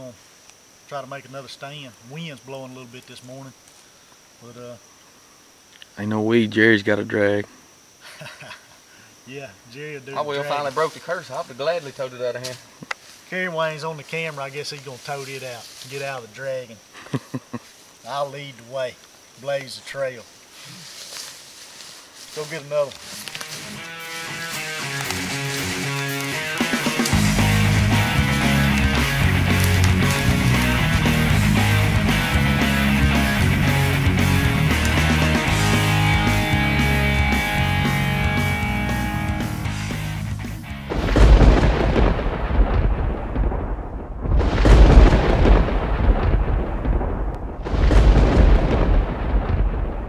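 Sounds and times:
music with bass beat: 23.7 - 41.4
loud deep booms: 40.8 - 50.0.

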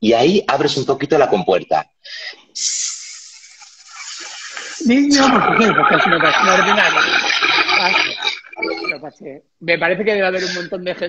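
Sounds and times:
man making hissing shhh: 2.6 - 5.0.

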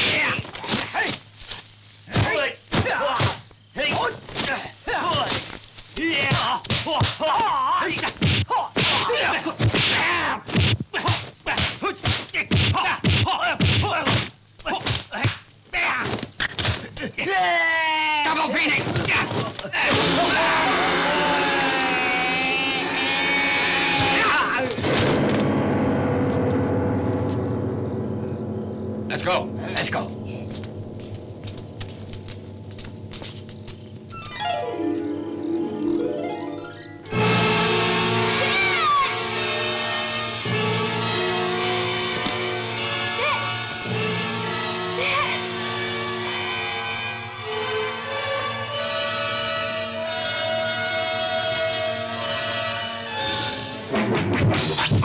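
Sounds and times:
man screaming: 19.7 - 24.8, 38.3 - 39.2, 45.0 - 45.5
low dense rumble: 24.7 - 34.3
sustained orchestral note: 25.1 - 38.5.

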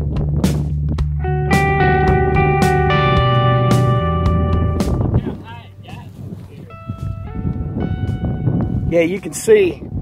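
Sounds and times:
wind rumble on microphone: 0.0 - 1.2, 4.4 - 10.0
guitar music: 1.1 - 9.1.

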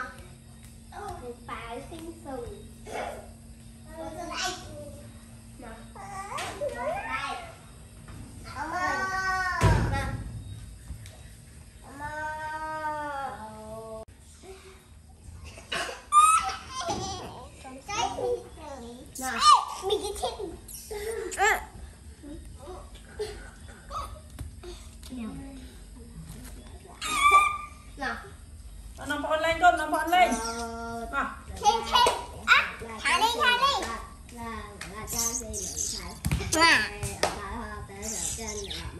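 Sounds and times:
baby monkey high-pitched calls: 27.0 - 27.9, 30.3 - 30.8, 35.1 - 36.9, 38.0 - 38.9.

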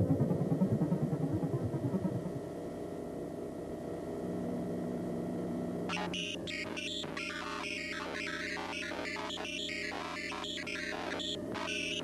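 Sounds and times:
analog synthesizer electronic music: 5.9 - 12.0.

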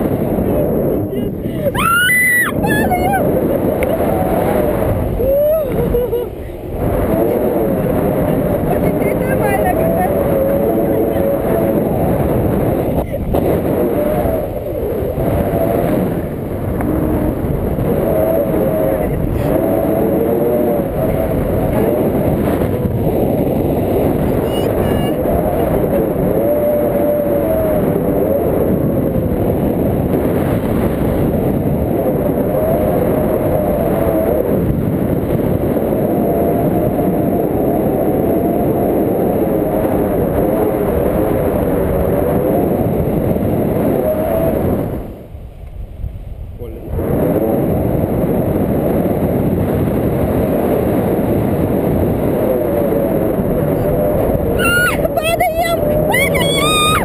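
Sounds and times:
wind rushing over microphone: 0.0 - 57.0.

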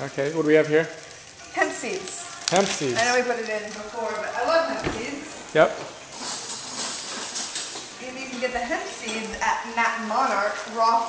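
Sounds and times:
pasta sizzling in a pan: 0.0 - 11.0.

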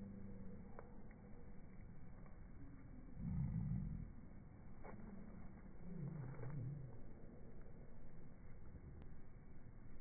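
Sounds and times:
slowed bird calls growling: 2.6 - 4.3.

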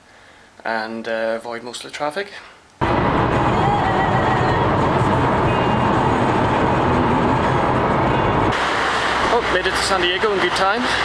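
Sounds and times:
car road and engine noise: 2.8 - 11.0.

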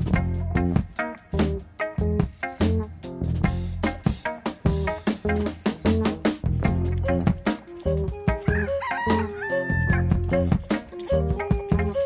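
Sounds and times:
background music with steady beat: 0.0 - 12.0
rooster crowing: 8.4 - 10.2.

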